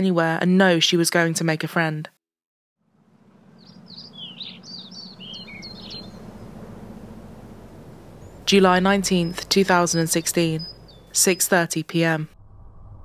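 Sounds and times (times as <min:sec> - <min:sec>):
low outdoor rumble: 0:02.9 - 0:11.6, 0:12.2 - 0:13.0
bird chirping: 0:03.4 - 0:11.7.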